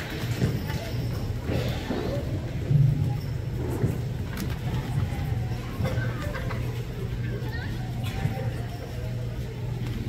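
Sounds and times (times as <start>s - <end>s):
low hum of hall: 0.0s - 10.0s.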